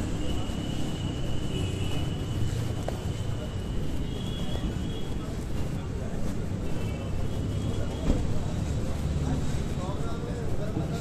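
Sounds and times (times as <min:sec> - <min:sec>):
faint voices: 0:00.0 - 0:11.0
traffic and machinery rumble: 0:00.0 - 0:11.0.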